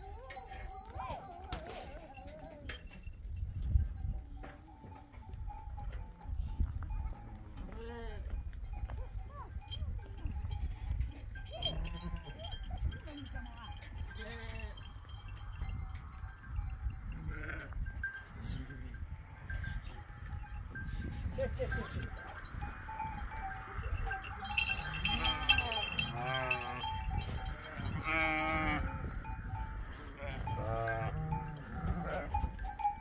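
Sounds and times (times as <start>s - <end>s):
goats and sheep bleating: 7.1s - 15.4s, 17.0s - 33.0s
low rumbling wind gusts: 8.2s - 33.0s.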